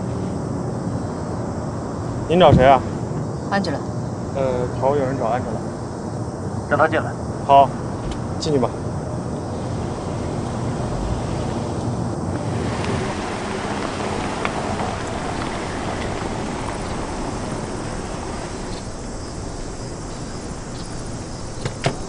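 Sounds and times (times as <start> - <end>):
car driving slowly on pavement: 7.5 - 22.0.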